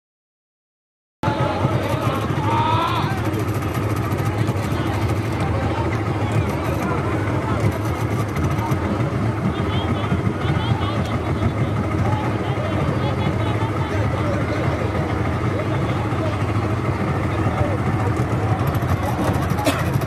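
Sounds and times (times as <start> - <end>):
boat motor running: 1.2 - 20.0
crowd babble: 1.2 - 20.0.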